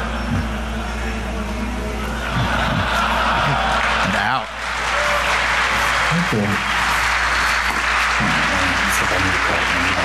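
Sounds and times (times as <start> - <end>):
audience noise: 0.0 - 10.0
laughter: 2.1 - 4.4.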